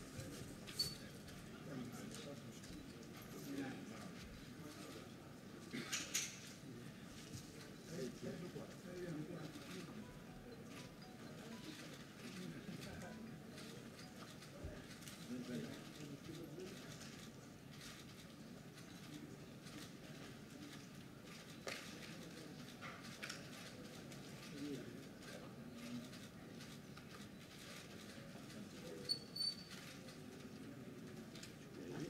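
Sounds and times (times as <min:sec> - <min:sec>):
murmur of voices: 0:00.0 - 0:32.0.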